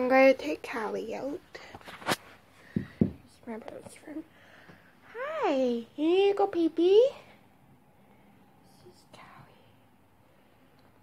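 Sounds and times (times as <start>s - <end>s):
faint whispering: 8.6s - 10.1s.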